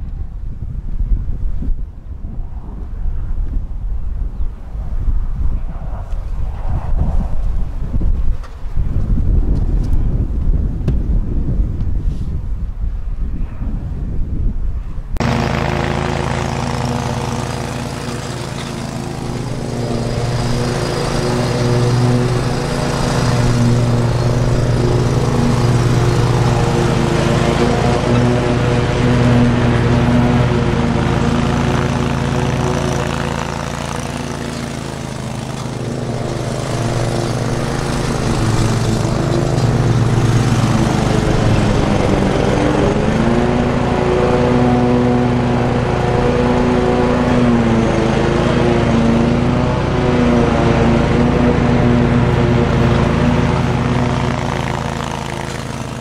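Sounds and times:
riding mower engine running: 0:15.2 - 0:56.0.

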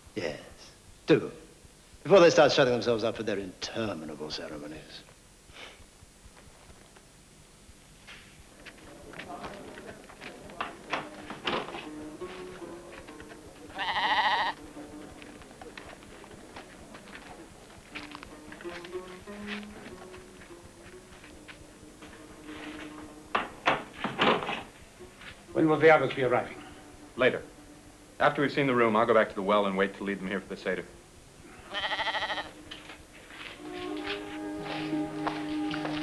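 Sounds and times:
sheep bleating: 0:13.7 - 0:14.6, 0:31.4 - 0:32.7.

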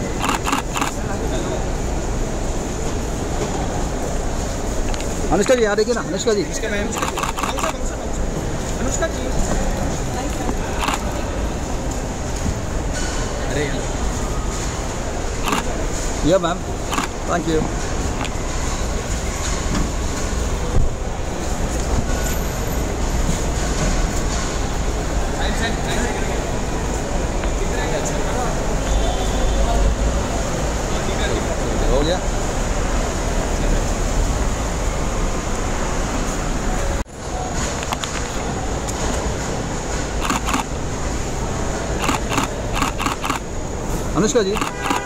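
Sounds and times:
car park background noise: 0:00.0 - 0:45.0
traffic noise: 0:00.0 - 0:45.0.

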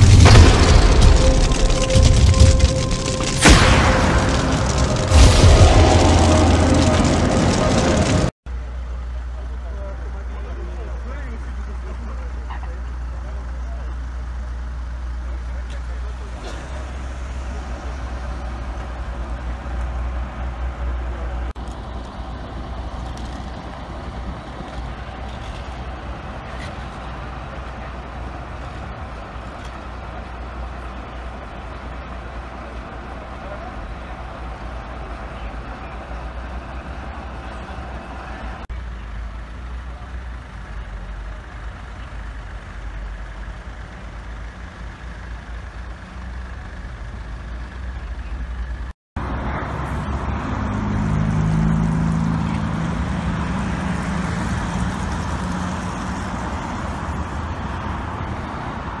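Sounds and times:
title jingle with deep boom: 0:00.0 - 0:08.3
vehicle engines idling: 0:00.0 - 0:59.0.

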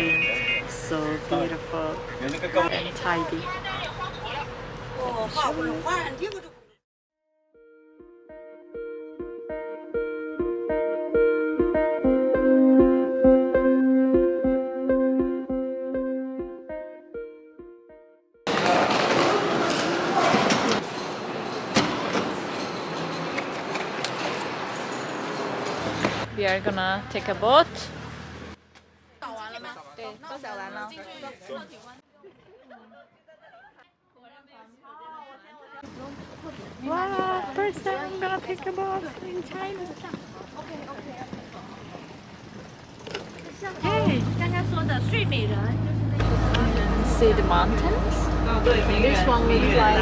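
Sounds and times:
light outdoor ambience: 0:19.5 - 0:50.0
footsteps on pier walkway: 0:35.9 - 0:43.6
hubbub of voices: 0:43.5 - 0:50.0.

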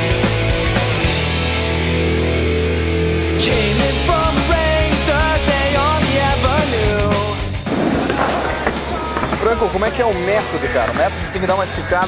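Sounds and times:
punk rock music with singing: 0:03.0 - 0:12.0
skateboard wheels rolling on wood: 0:06.1 - 0:12.0.

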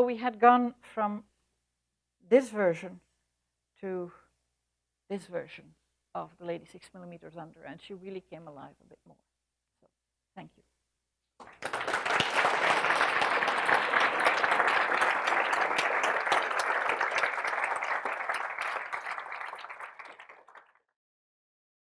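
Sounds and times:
audience applauding: 0:11.4 - 0:20.8.

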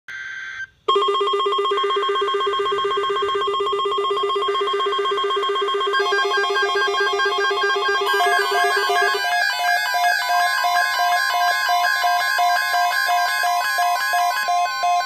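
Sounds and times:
pulsing electronic alarm beeps: 0:00.1 - 0:15.0
data-like tone burst: 0:00.6 - 0:12.9.

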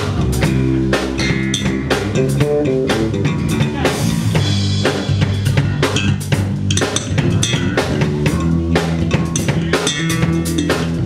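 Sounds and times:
drum kit beat: 0:00.0 - 0:11.0
electric bass guitars: 0:00.0 - 0:11.0.

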